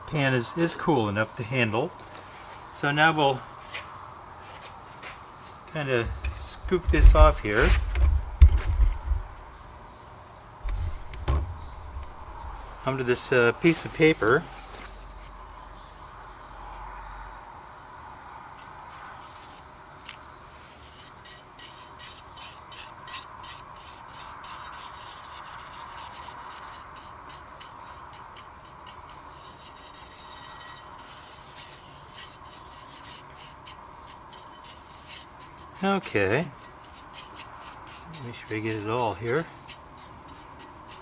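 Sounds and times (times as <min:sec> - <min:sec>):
tool scraping powder in pan: 0:06.0 - 0:07.9, 0:20.8 - 0:41.0.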